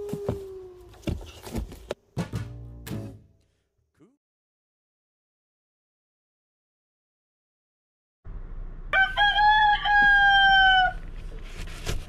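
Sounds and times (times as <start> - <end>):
rooster crowing: 8.9 - 11.0.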